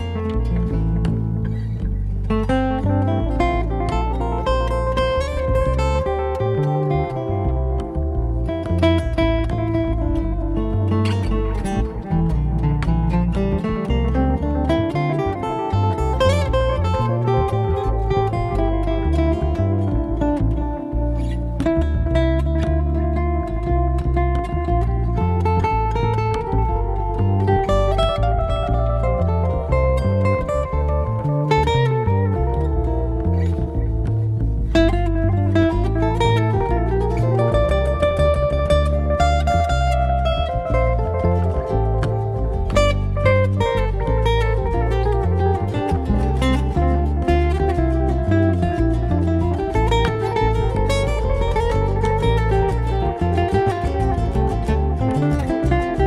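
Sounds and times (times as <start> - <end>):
acoustic guitar picking: 0.0 - 56.0
fretless acoustic bass: 0.0 - 56.0.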